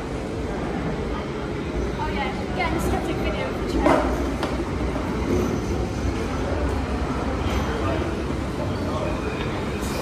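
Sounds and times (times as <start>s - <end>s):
underground train rumbling in tunnel: 0.0s - 10.0s.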